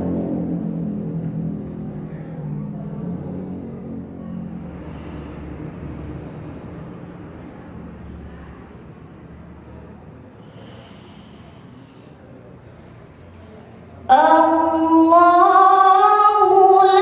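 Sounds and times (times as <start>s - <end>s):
low room rumble and hum: 0.0s - 17.0s.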